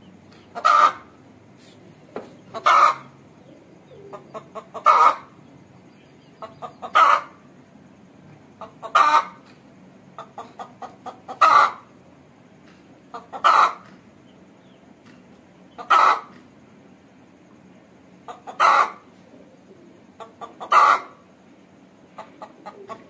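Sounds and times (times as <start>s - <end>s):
hen cackling: 0.3s - 1.2s, 2.4s - 5.5s, 6.2s - 7.6s, 8.6s - 9.5s, 10.1s - 12.0s, 13.0s - 14.0s, 15.8s - 16.4s, 18.2s - 21.4s, 22.0s - 23.0s.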